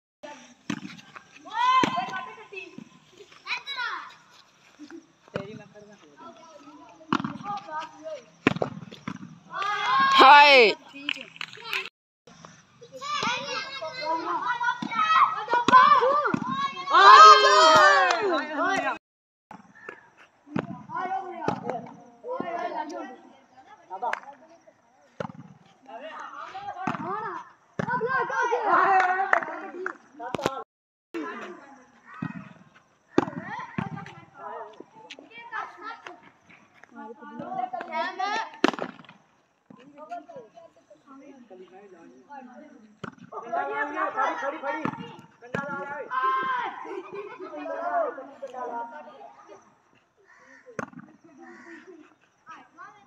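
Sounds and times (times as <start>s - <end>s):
boys calling and shouting: 0.2s - 19.0s, 19.6s - 53.0s
boys shouting: 1.4s - 2.8s, 9.5s - 10.8s, 12.9s - 19.0s, 20.9s - 24.1s, 25.9s - 29.8s, 37.0s - 38.6s, 43.3s - 49.6s.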